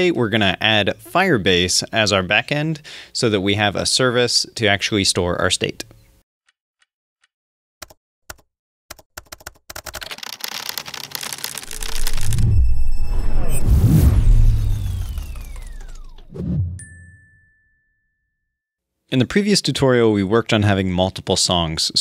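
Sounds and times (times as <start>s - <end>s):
falling whistle-like tone: 11.8s - 16.6s
low hit: 12.1s - 16.8s
high held ding: 16.8s - 18.6s.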